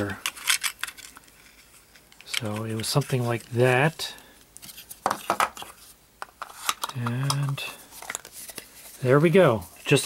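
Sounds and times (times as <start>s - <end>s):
faint handling: 0.0s - 10.0s.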